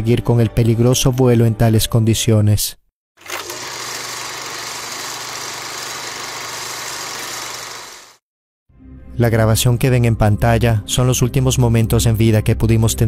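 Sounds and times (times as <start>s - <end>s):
engine drone: 3.4s - 8.2s.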